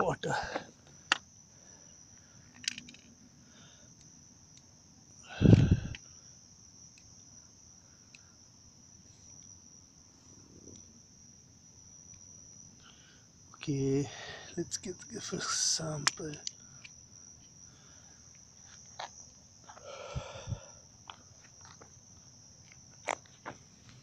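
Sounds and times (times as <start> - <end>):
crickets chirring: 0.0 - 24.0.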